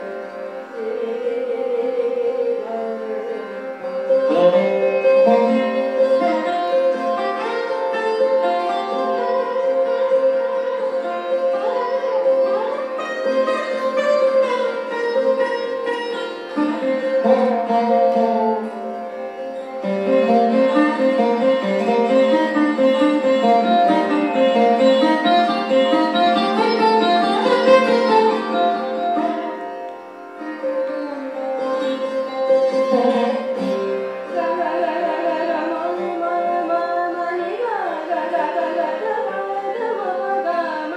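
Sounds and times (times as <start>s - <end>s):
sarod melody: 0.0s - 40.9s.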